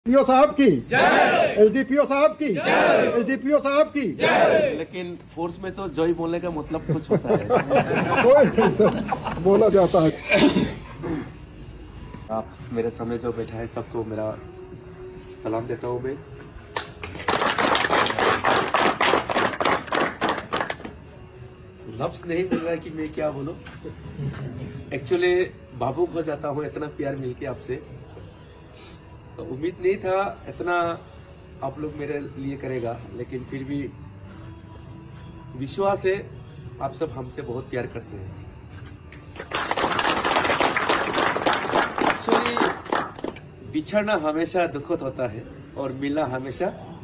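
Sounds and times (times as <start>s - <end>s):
people applauding: 16.7s - 21.0s, 39.3s - 43.5s.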